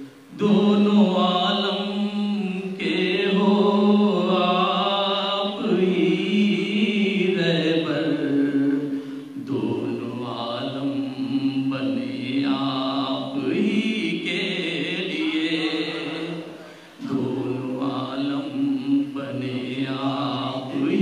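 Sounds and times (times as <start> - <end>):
man chanting poetry: 9.4 - 16.8.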